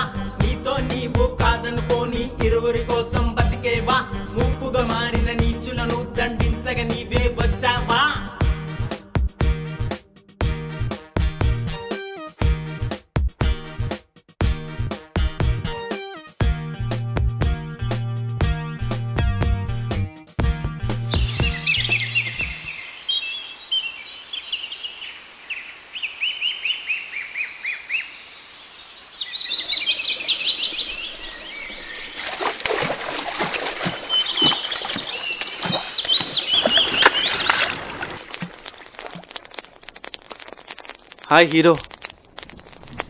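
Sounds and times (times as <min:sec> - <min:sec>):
birds chirping: 0:21.0 - 0:38.8
water splashing: 0:29.5 - 0:40.6.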